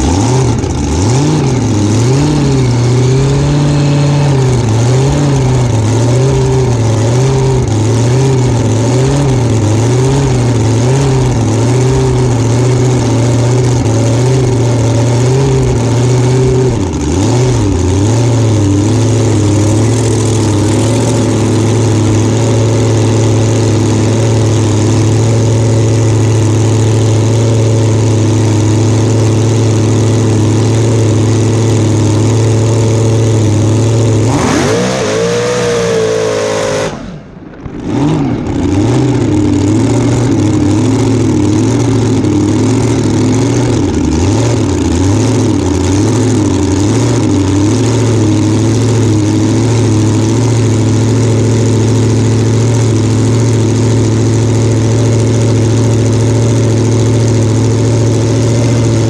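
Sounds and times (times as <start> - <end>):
engine revving up: 0.0 - 28.1, 30.5 - 50.6
supercharged engine idling unevenly: 0.0 - 59.0.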